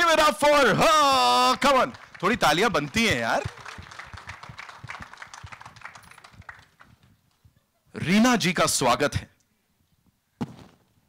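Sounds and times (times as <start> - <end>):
audience clapping: 0.9 - 7.4.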